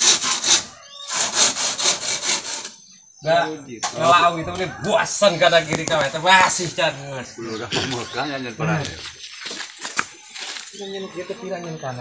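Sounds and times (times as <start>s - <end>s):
hand saw cutting bamboo: 0.0s - 2.8s.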